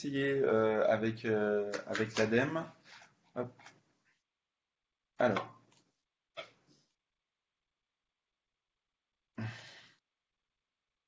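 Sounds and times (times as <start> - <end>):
person sighing: 9.4 - 10.0.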